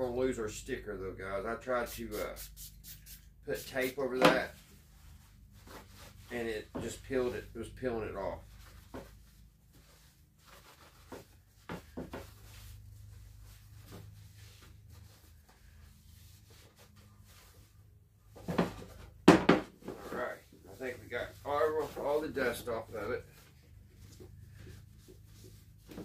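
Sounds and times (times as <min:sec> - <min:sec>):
knocks on wooden tabletop: 0:19.2 - 0:19.7.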